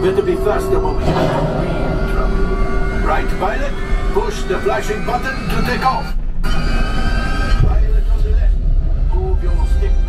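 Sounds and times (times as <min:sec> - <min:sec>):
indistinct voices: 0:00.0 - 0:10.0
low rumble and electronic hum: 0:00.0 - 0:10.0.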